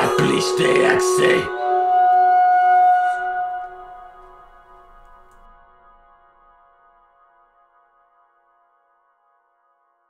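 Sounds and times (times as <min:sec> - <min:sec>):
held musical chord: 0:00.0 - 0:05.9.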